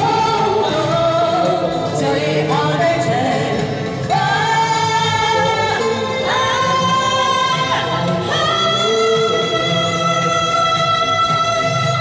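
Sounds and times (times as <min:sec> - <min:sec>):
two women singing a pop duet: 0:00.0 - 0:12.0.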